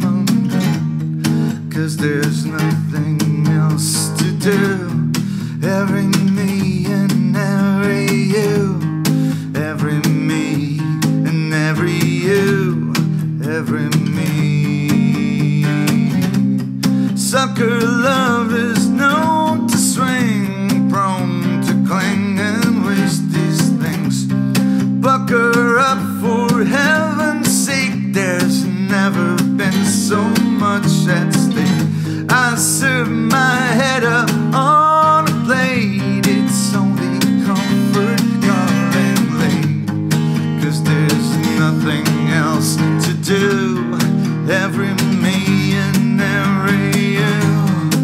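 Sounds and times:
acoustic guitar strumming: 0.0s - 48.0s
man singing: 0.0s - 48.0s.

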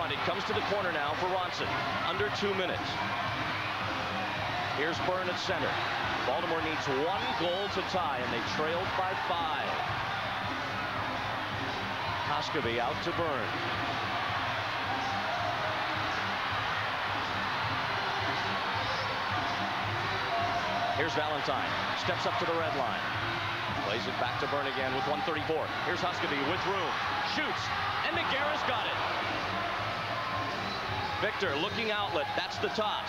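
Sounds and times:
indoor crowd noise: 0.0s - 33.0s
music playing: 0.0s - 33.0s.

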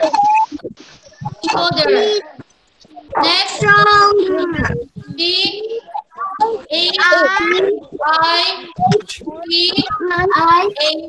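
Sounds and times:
child speaking sing-song: 1.2s - 11.0s.

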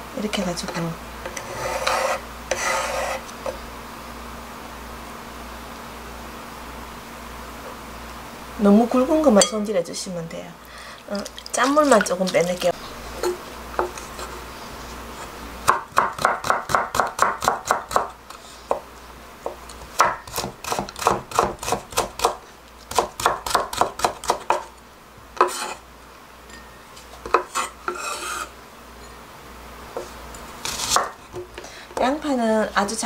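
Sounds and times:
knife cutting carrot on wooden board: 25.4s - 25.8s, 30.0s - 31.2s.

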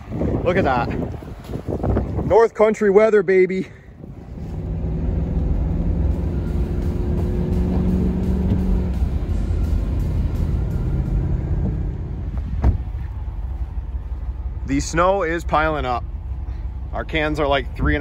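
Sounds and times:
truck engine rumbling: 0.0s - 18.0s.

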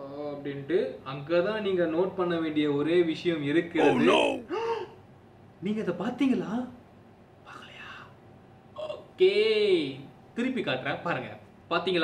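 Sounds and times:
man speaking: 3.8s - 4.5s
man whispering: 3.8s - 4.5s.

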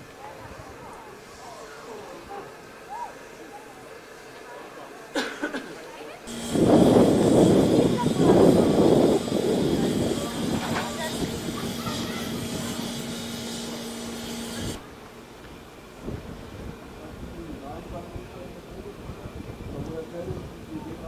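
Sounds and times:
steam locomotive hissing steam: 0.0s - 21.0s
steady low hum: 6.3s - 21.0s.

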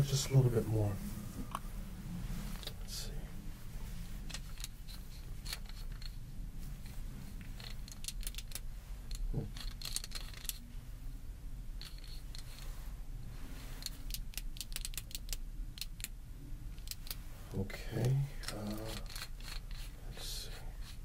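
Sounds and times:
steady low rumble: 0.0s - 9.9s, 10.5s - 14.0s
metallic clicks and rattles: 7.4s - 10.6s, 13.8s - 16.2s.

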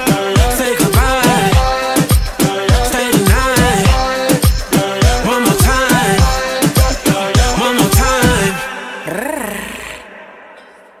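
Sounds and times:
person singing a held note: 9.0s - 10.1s.

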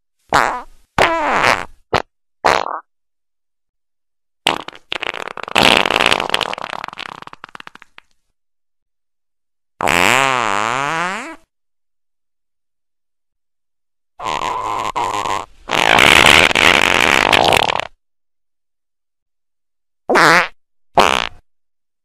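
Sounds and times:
fart sounds: 0.3s - 2.9s, 4.4s - 8.1s, 9.8s - 11.5s, 14.2s - 18.0s, 20.1s - 21.5s.

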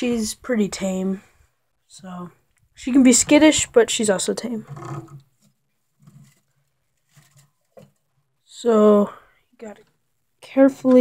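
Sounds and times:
faint rustle: 4.7s - 8.3s.

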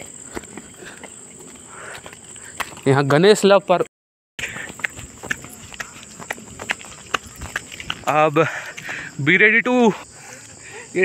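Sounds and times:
footsteps on dirt path: 0.0s - 3.8s, 4.4s - 10.9s.

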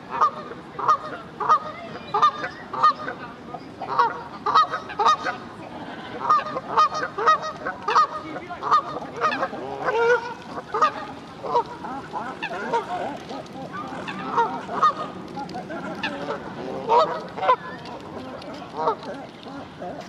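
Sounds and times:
waterbirds calling: 0.1s - 20.0s.

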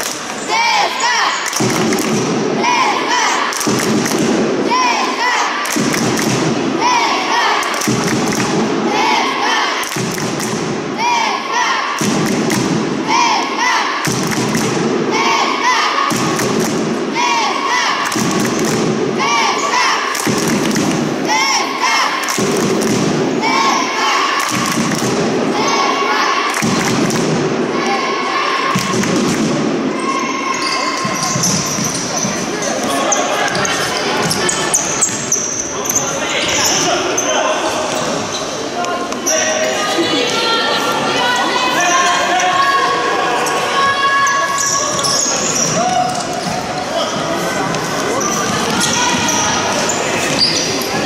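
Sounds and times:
crowd chanting: 0.0s - 51.0s.

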